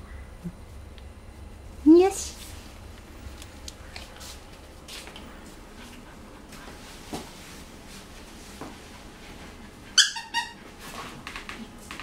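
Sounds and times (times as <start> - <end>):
puppy yipping: 10.0 - 10.6.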